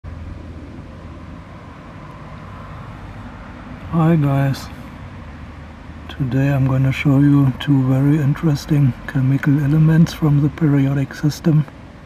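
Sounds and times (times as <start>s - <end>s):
low rumble with soft hiss: 0.1s - 12.0s.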